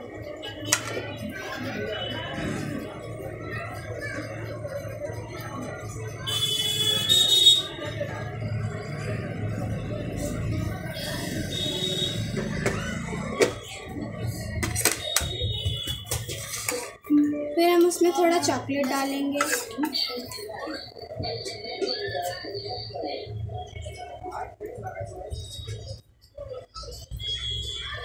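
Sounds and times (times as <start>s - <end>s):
high-pitched tone: 17.1s - 18.5s.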